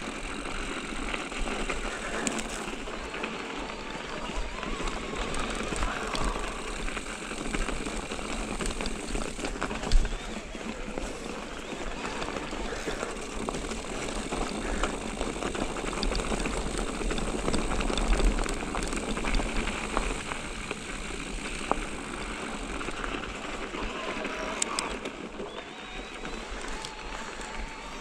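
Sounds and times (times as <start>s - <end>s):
bike clicks and rattles: 0.0s - 28.0s
bike tyres on loose stones: 0.0s - 28.0s.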